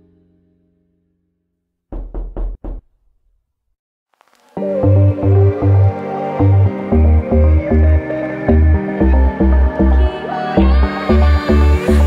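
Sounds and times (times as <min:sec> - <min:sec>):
quick knocks: 0:01.9 - 0:03.0.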